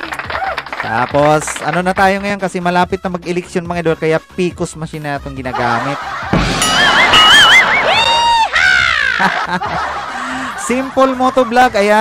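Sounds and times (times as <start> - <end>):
high whistle-like sound effect: 6.6 - 8.5.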